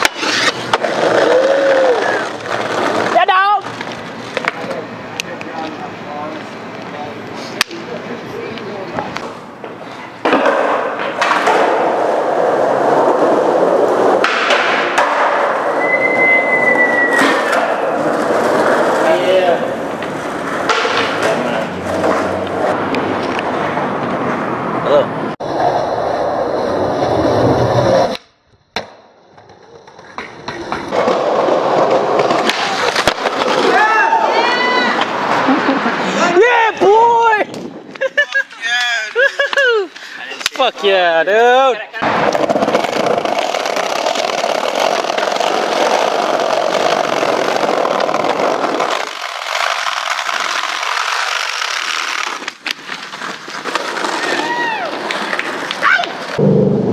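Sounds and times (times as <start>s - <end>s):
skateboard wheels rolling on asphalt: 0.0s - 56.6s.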